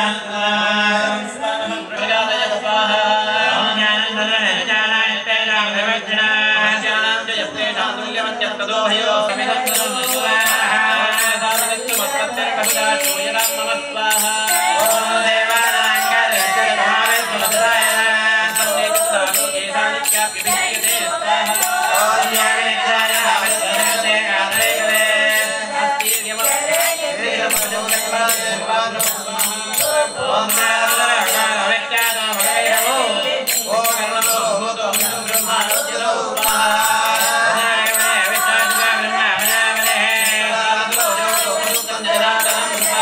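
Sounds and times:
women singing together: 0.0 - 4.7, 5.5 - 43.0
hand cymbals clinking: 9.3 - 43.0.

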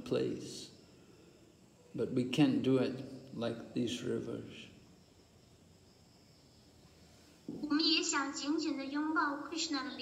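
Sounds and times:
woman speaking: 7.5 - 10.0.

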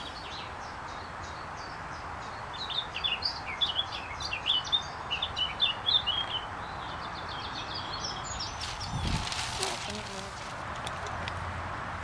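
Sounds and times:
bird chirping: 0.0 - 10.3.

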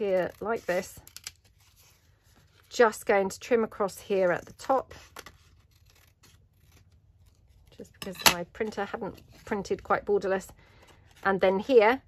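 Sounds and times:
scissors snipping paper: 0.0 - 1.6, 4.4 - 9.0.

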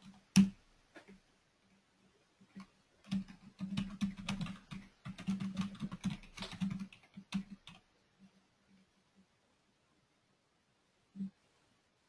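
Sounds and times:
typing on computer keyboard: 0.0 - 0.6, 2.6 - 7.9.

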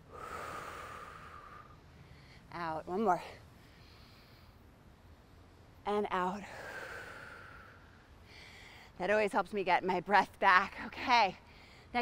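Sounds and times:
woman breathing deeply: 0.0 - 2.5, 6.4 - 9.0.

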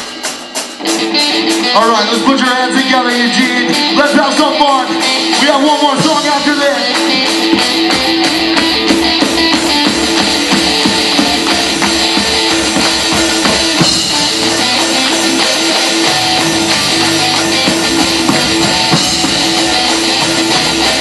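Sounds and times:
drum kit: 0.0 - 21.0
electric guitar: 0.0 - 21.0.

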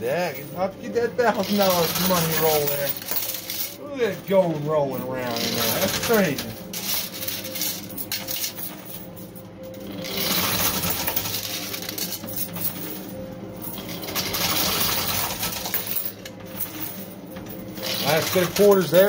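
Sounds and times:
steady machine hum: 0.0 - 19.0
coins clinking and jingling: 0.4 - 19.0.

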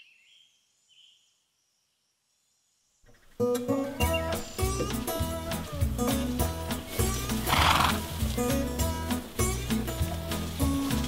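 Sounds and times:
guitar music: 3.4 - 11.0
horse neighing: 7.2 - 8.2.

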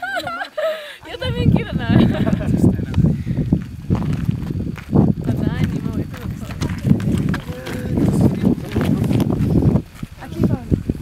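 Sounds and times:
people's voices: 0.0 - 3.4, 5.2 - 11.0
wind buffeting microphone: 1.0 - 11.0.

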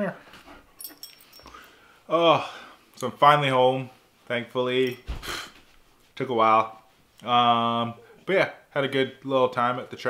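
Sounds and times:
dog collar tag jingling: 0.7 - 1.8.

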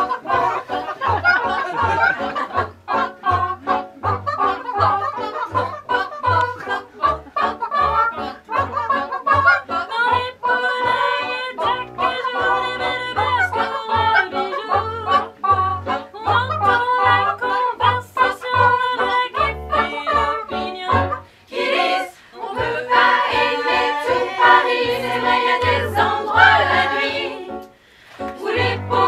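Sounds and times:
women singing in harmony: 0.0 - 29.0.

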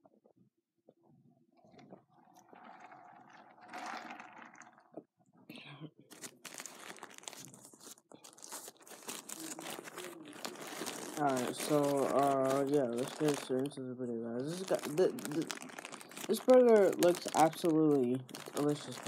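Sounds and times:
paper wrapper crinkling: 3.6 - 4.6, 6.1 - 13.8, 14.4 - 19.0.

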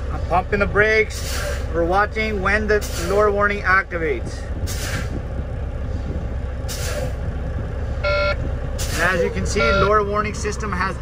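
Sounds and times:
diesel engine idling: 0.0 - 11.0
air brakes hissing: 1.1 - 1.8, 2.8 - 3.2, 4.6 - 5.2, 6.0 - 7.2, 8.8 - 9.2.

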